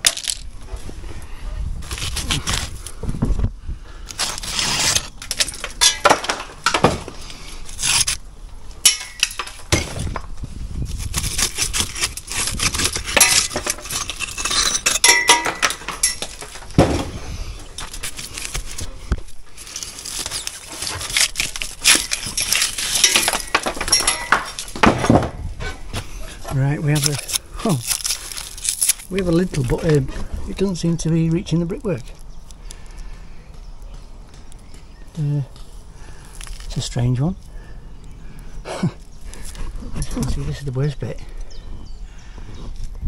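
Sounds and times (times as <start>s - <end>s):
gritty scraping: 0.0s - 43.0s
bricks clinking and knocking: 8.8s - 10.3s, 11.5s - 18.9s, 19.6s - 25.5s.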